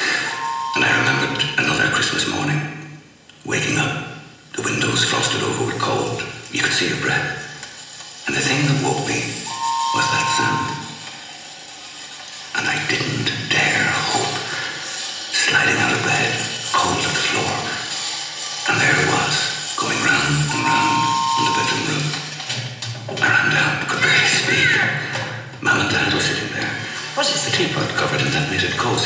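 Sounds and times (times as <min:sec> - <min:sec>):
steady whistle-like tone: 0:00.0 - 0:01.8, 0:09.2 - 0:11.1, 0:18.6 - 0:22.2
toy train running over loudspeaker: 0:00.0 - 0:02.4, 0:04.6 - 0:22.6, 0:23.2 - 0:29.0.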